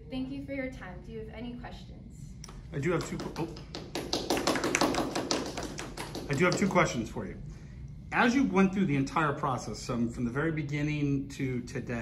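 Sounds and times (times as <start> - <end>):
small group clapping: 2.5 - 7.1.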